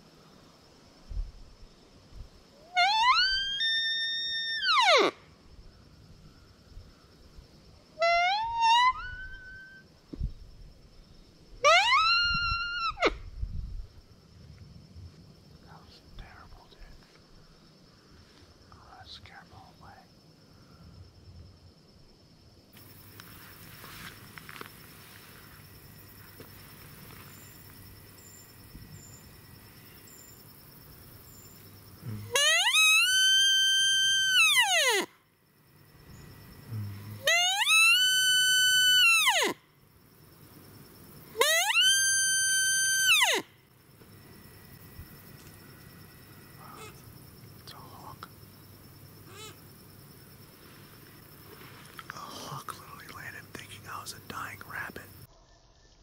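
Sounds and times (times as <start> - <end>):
deer call whistle: 2.6 - 5.2, 8.0 - 9.8, 11.6 - 13.2, 32.2 - 35.1, 37.2 - 39.6, 41.4 - 43.5.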